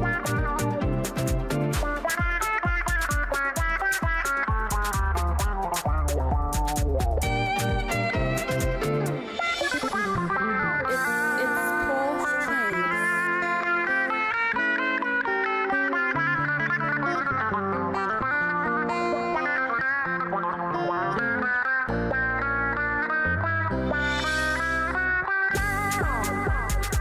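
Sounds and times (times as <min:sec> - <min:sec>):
drum beat: 0:00.0 - 0:10.2, 0:25.6 - 0:27.0
bass line: 0:00.0 - 0:11.4, 0:21.9 - 0:27.0
guitar: 0:00.0 - 0:27.0.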